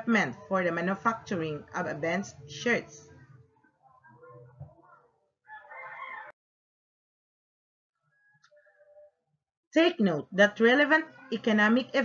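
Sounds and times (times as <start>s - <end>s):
rooster crowing: 5.4s - 6.4s.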